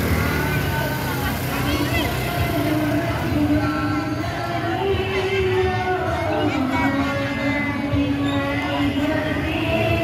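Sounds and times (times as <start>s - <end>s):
motorbike engines passing: 0.0s - 10.0s
voices of walking crowd: 0.0s - 10.0s.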